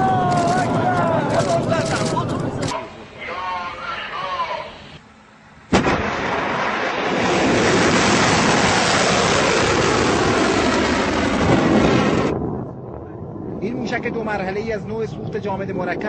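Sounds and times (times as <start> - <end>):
missile ignition bang: 5.7 - 13.6.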